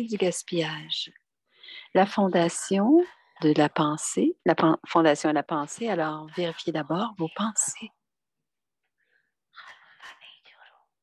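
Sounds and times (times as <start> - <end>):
person whispering: 9.5 - 11.0.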